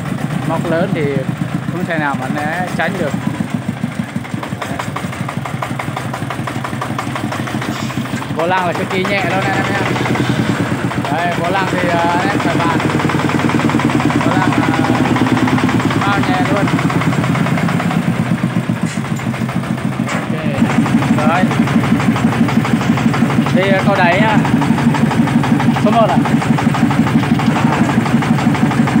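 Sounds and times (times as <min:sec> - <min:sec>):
diesel engine chugging: 0:00.0 - 0:29.0.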